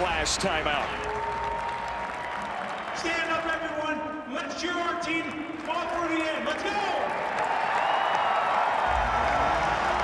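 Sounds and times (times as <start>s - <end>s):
crowd applauding and cheering: 0.0s - 10.0s.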